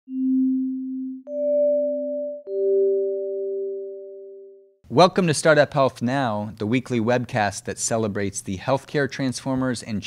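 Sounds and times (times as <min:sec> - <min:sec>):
low sine tone: 0:00.1 - 0:04.8.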